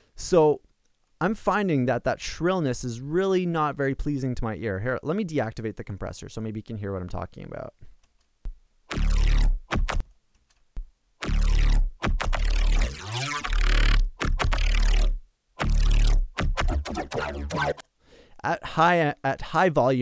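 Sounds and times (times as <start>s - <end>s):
synthesized bass line in stabs: 8.9s - 10.0s, 11.2s - 17.8s
shrill synth texture: 12.4s - 17.8s.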